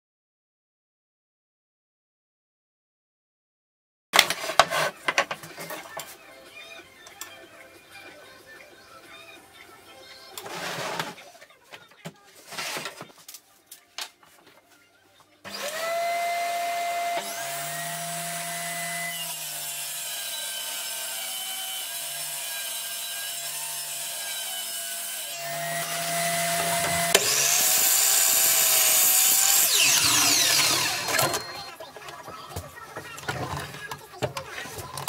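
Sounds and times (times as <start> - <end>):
table saw cutting board: 4.2 - 5.0, 10.4 - 11.2, 15.5 - 31.7
saw motor winding down: 15.5 - 31.7.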